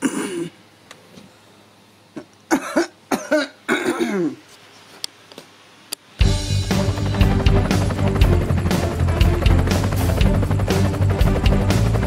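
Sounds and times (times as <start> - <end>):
woman coughing: 0.0 - 0.6, 2.5 - 4.4.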